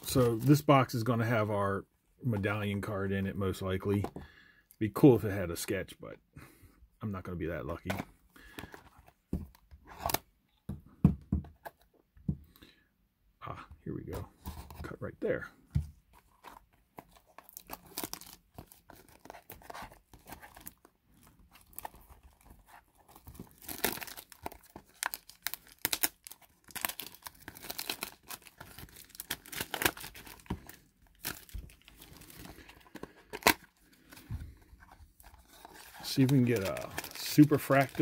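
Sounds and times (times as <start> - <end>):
plastic shrink wrap crinkling and tearing: 17.0 - 38.0.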